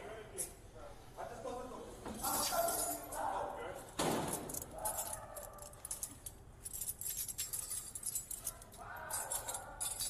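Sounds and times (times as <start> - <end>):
metal keys jingling: 2.2 - 10.0.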